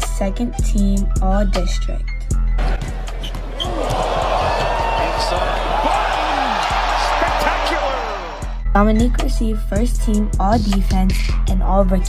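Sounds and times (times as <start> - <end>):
basketball bouncing: 2.6 - 7.0
sneakers squeaking on hardwood: 2.6 - 7.0
crowd noise and voices: 2.6 - 8.6
faint background music: 8.6 - 12.0.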